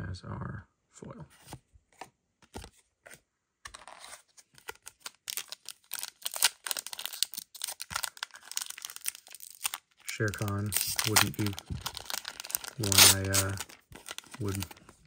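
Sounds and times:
foil wrapper crinkling and tearing: 0:04.6 - 0:15.0.

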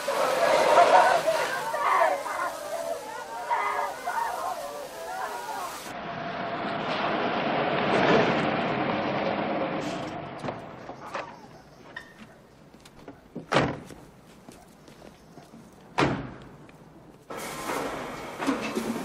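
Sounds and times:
hose spray hissing: 0:00.0 - 0:05.9, 0:17.3 - 0:19.0
many voices calling out: 0:00.0 - 0:05.9
car engine and tyres: 0:05.9 - 0:19.0.

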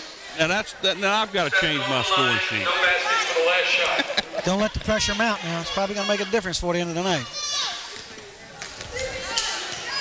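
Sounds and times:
murmur of spectators: 0:00.0 - 0:10.0.

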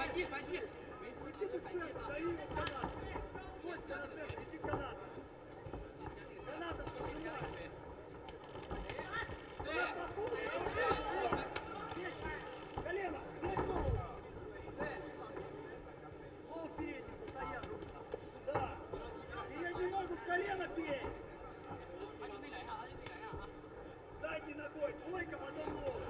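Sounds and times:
crowd shouting: 0:08.5 - 0:13.8.

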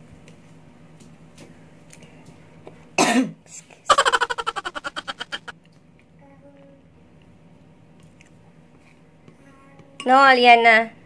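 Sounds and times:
person coughing: 0:03.0 - 0:03.4.

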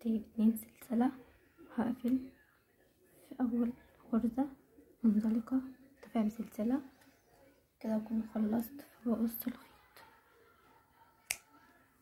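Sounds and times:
scissors snipping yarn: 0:11.2 - 0:11.7.

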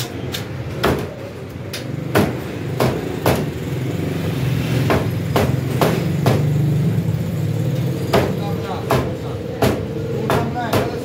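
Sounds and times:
cleaver chopping on wooden block: 0:02.1 - 0:03.5.

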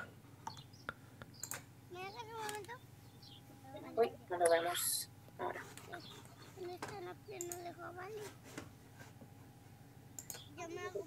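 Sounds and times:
faint children's voices: 0:01.9 - 0:08.7, 0:10.3 - 0:11.0.

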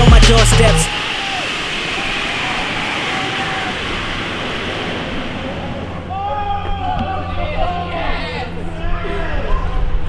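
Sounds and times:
steady rushing noise: 0:00.8 - 0:10.0.

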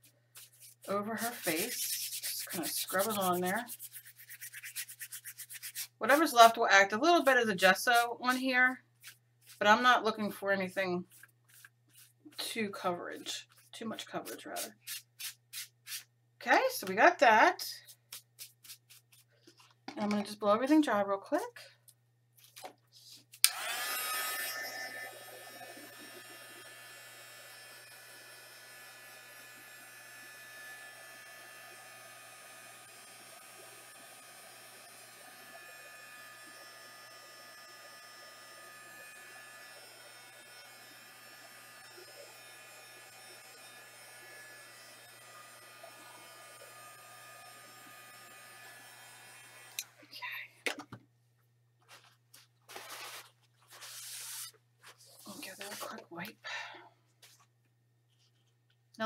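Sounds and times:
heat tool switch: 0:23.4 - 0:25.6
heat tool blowing: 0:23.4 - 0:49.9.

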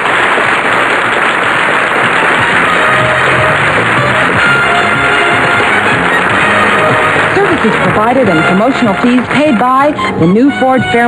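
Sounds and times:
audience applauding: 0:00.0 - 0:10.4
music: 0:02.0 - 0:11.0.

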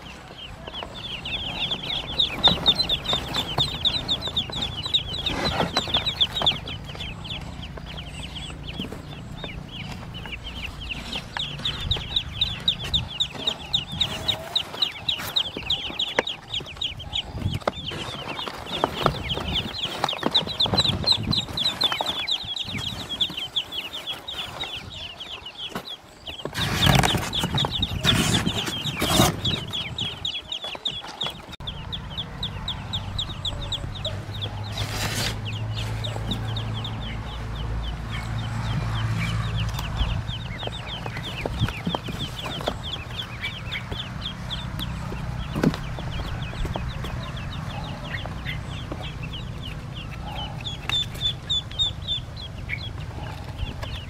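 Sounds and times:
ducklings peeping: 0:00.0 - 0:54.0.

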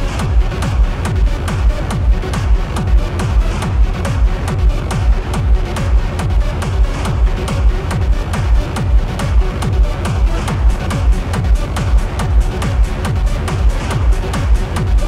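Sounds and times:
electronic dance music: 0:00.0 - 0:15.0
kick drum: 0:00.0 - 0:15.0.

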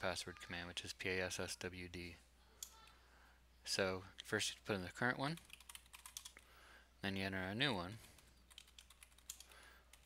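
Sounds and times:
computer keyboard key clicks: 0:05.5 - 0:06.4, 0:08.5 - 0:10.0.

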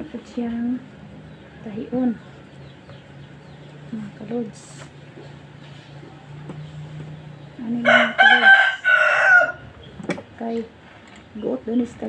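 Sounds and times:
rooster crowing: 0:07.8 - 0:09.7.

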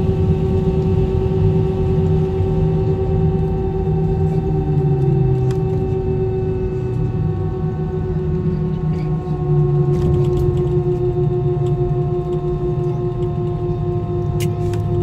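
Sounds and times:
jet engines humming and whining: 0:00.0 - 0:15.0
low rumble: 0:00.0 - 0:15.0.

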